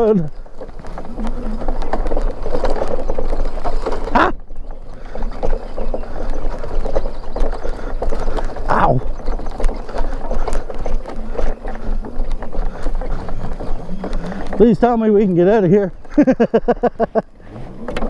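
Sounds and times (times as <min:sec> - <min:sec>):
grass brushing against bike: 0:00.0 - 0:17.8
mini bike rattling on trail: 0:00.0 - 0:18.0.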